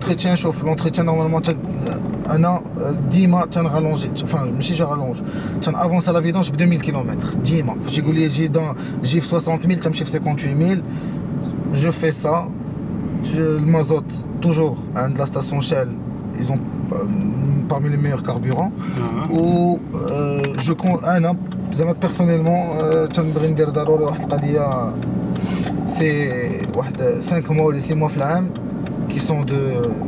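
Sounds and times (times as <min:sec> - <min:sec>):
man talking: 0:00.0 - 0:10.9, 0:13.2 - 0:25.0, 0:25.6 - 0:30.0
car road and engine noise: 0:00.0 - 0:30.0.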